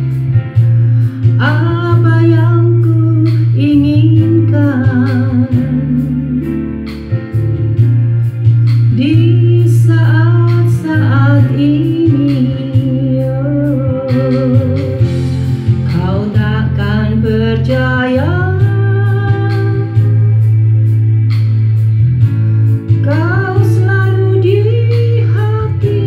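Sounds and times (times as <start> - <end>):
backing music with guitar and beat: 0.0 - 26.0
woman singing with vibrato: 1.4 - 6.8, 8.9 - 15.1, 15.8 - 20.4, 23.0 - 26.0.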